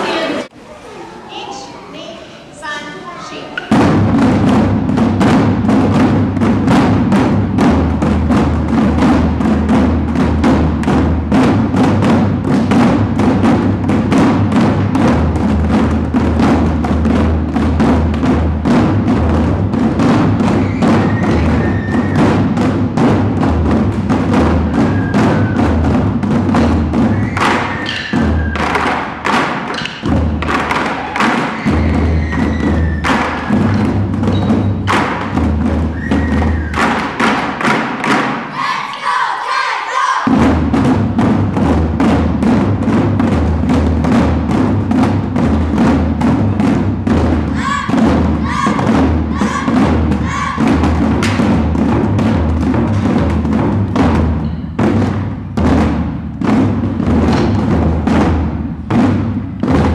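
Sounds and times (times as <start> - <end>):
taiko drumming: 3.5 - 39.2, 40.2 - 59.9.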